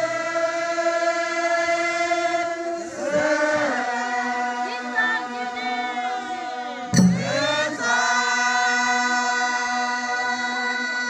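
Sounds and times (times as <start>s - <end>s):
group of voices chanting: 0.0s - 11.0s.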